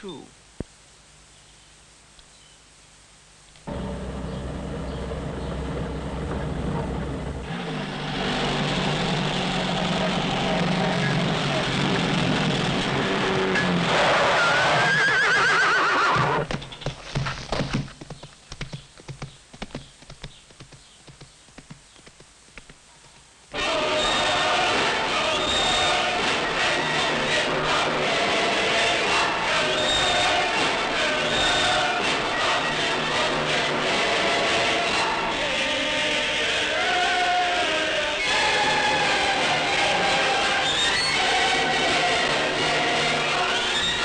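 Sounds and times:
loud burst of sound: 7.2s - 14.9s
horse whinnying: 13.9s - 16.5s.

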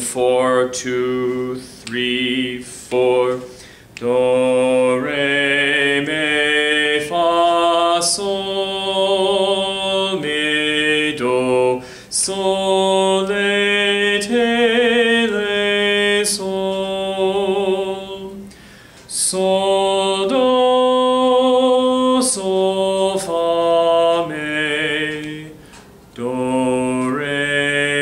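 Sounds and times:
man singing unaccompanied: 0.0s - 18.5s, 19.1s - 28.0s.

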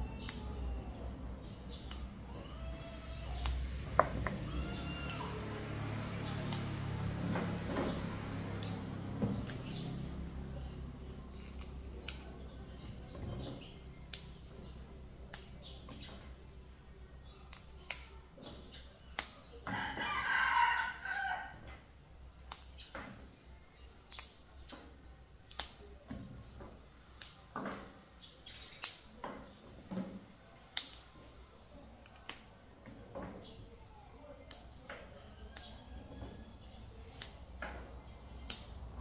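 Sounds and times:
green beans snapping: 0.2s - 0.5s, 1.7s - 2.1s, 3.4s - 3.7s, 4.8s - 5.4s, 6.3s - 6.8s, 8.4s - 10.3s, 11.2s - 12.4s, 14.1s - 14.5s, 15.2s - 16.2s, 17.4s - 18.2s, 19.1s - 19.5s, 22.4s - 22.9s, 24.1s - 24.5s, 25.4s - 26.0s, 27.2s - 27.5s, 28.6s - 29.1s, 30.7s - 31.2s, 32.0s - 32.6s, 34.4s - 35.0s, 37.2s - 37.4s, 38.4s - 38.8s
bean pod squeaking: 11.2s - 14.4s
rooster crowing: 19.7s - 21.6s.

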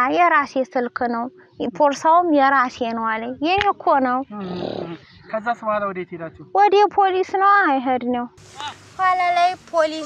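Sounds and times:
woman speaking: 0.0s - 4.4s.

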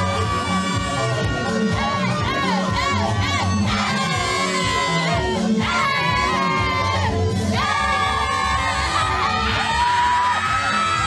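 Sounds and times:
crowd cheering: 0.0s - 11.0s
dance music with bass beat: 0.0s - 11.0s.

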